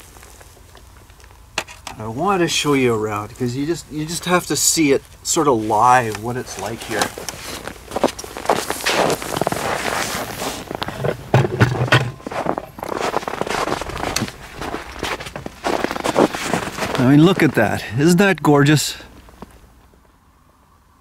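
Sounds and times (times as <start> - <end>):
footsteps crunching in snow: 0.0 - 1.4, 2.0 - 20.0.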